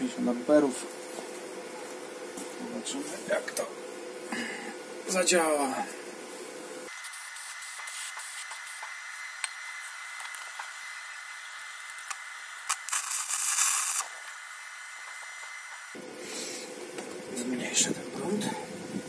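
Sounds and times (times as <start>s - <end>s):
arc welder crackling: 0.9s - 17.5s
aerosol can spraying hiss: 7.0s - 9.1s, 12.6s - 14.2s.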